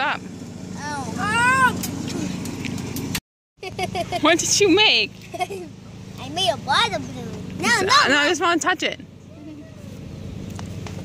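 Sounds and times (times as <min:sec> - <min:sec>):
low outdoor rumble: 0:00.0 - 0:11.0
child's voice: 0:00.8 - 0:02.4, 0:06.2 - 0:08.1, 0:09.3 - 0:10.0.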